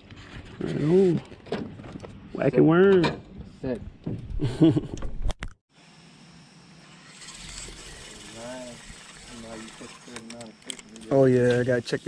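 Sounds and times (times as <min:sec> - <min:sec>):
man laughing: 0:04.4 - 0:05.0
outdoor hiss: 0:05.7 - 0:12.0.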